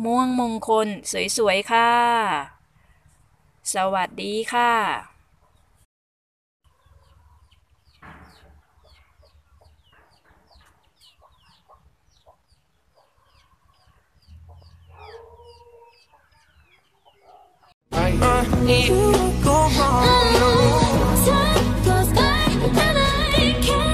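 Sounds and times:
birds chirping: 4.8 - 5.9, 6.7 - 17.8.

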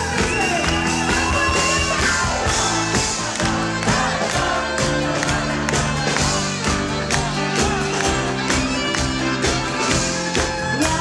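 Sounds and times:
crowd noise: 0.0 - 11.0
drum beat: 0.0 - 11.0
live pop band: 0.0 - 11.0
person singing: 1.2 - 11.0.

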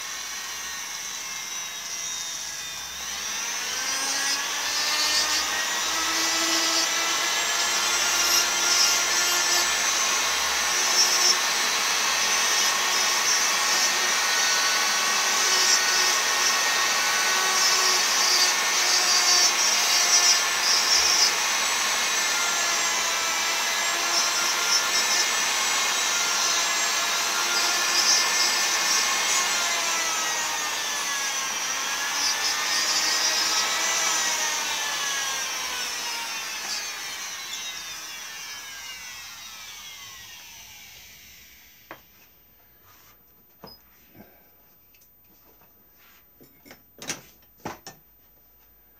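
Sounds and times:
rotary tool carving wood: 0.0 - 42.0.

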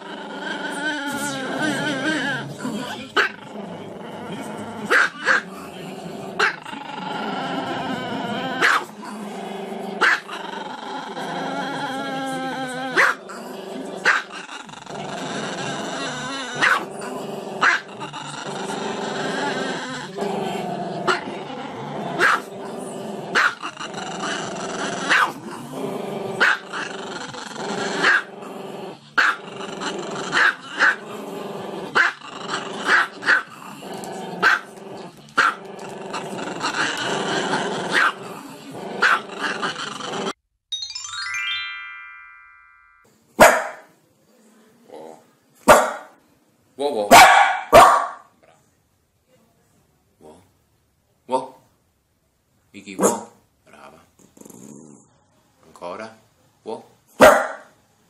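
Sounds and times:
dog barking: 4.9 - 5.4, 8.6 - 8.9, 10.0 - 10.3, 13.0 - 13.2, 16.6 - 16.8, 22.2 - 22.5, 23.4 - 23.6, 25.1 - 25.4, 26.4 - 26.6, 29.2 - 29.4, 34.4 - 34.6, 37.9 - 38.2, 43.4 - 43.9, 45.7 - 46.1, 47.1 - 48.3, 53.0 - 53.4, 57.2 - 57.7.

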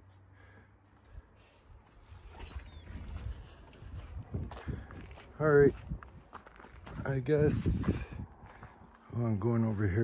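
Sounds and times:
brief high squeaks: 2.3 - 3.2
footsteps on dirt: 2.9 - 10.0.

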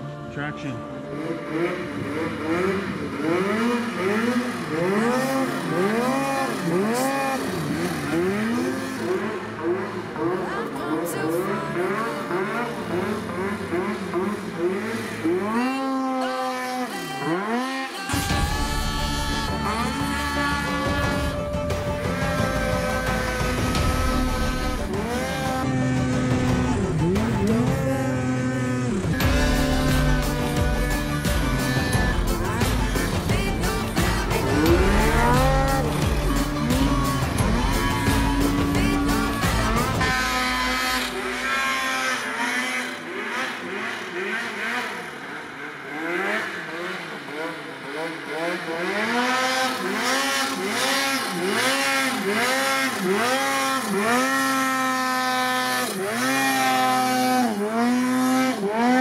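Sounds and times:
snowmobile engines revving: 0.0 - 59.0
music with steady beat: 18.1 - 28.0, 29.1 - 40.9.

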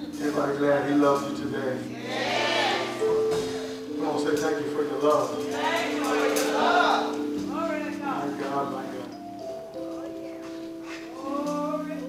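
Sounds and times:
keyboard chords: 0.0 - 12.0.

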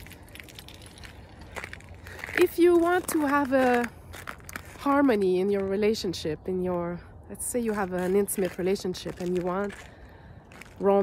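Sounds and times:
footsteps crunching on snow: 0.0 - 6.0, 7.4 - 11.0.

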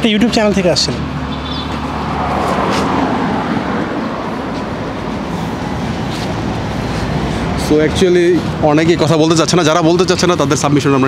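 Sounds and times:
road traffic rumble: 0.0 - 11.0
vehicle passing: 0.0 - 11.0.

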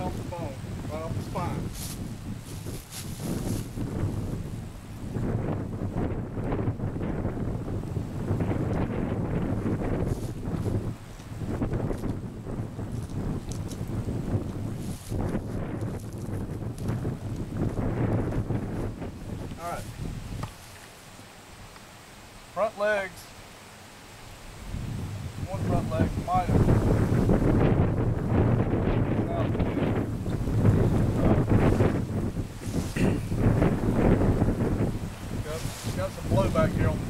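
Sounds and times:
wind buffeting microphone: 0.0 - 20.8, 24.4 - 37.0.

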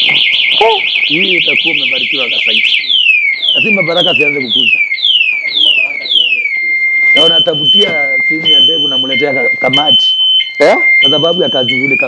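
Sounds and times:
alarm falling whoop: 0.0 - 12.0
motorcycle alarm warbling: 0.0 - 12.0
men talking: 0.6 - 2.7, 3.3 - 12.0.

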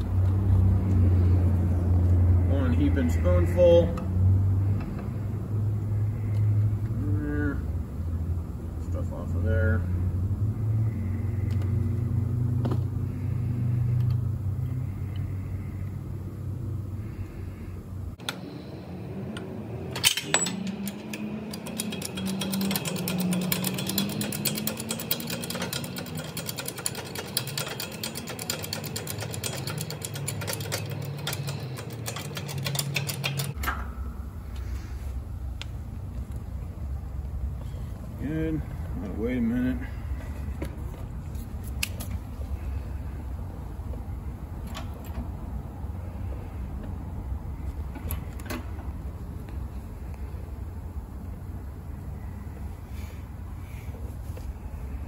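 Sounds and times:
steady low hum: 0.0 - 55.0
metal clink: 19.9 - 34.0.

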